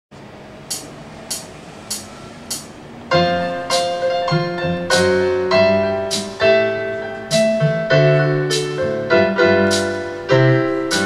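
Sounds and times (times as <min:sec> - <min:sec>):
high count-in ticks: 0:00.7 - 0:02.7
electronic keyboard playing ragtime: 0:00.7 - 0:11.0.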